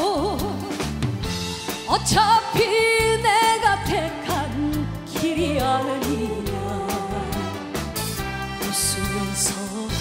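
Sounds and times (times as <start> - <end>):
woman singing: 0.0 - 1.0, 1.8 - 7.7, 8.5 - 10.0
live band playing: 0.0 - 10.0.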